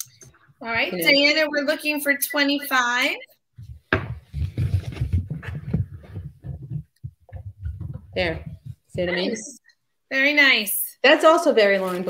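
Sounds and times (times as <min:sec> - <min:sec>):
low bumps and rustling: 0:03.6 - 0:09.2.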